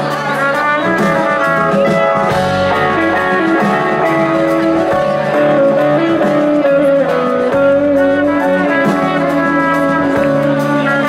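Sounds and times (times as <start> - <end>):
electric guitar: 0.0 - 11.0
sustained trumpet melody: 0.0 - 11.0.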